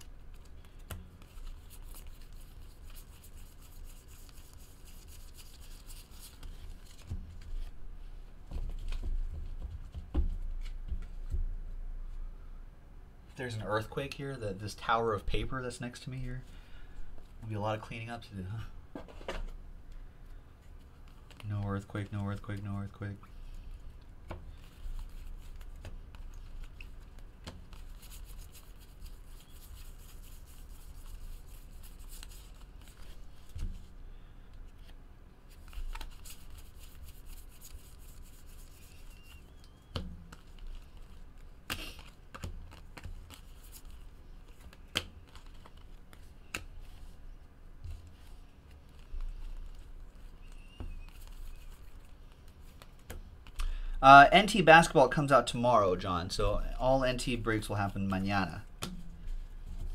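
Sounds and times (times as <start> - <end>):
cards rustling: 0.0 - 7.8, 20.3 - 33.7, 34.5 - 47.3, 47.9 - 53.8
low steady hum: 0.0 - 59.9.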